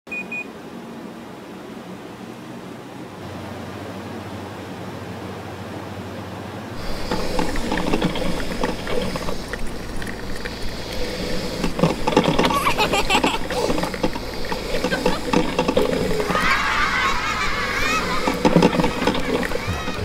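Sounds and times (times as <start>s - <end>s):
short high beeps: 0.1s - 0.5s
coffee maker gurgling and sputtering: 6.8s - 20.0s.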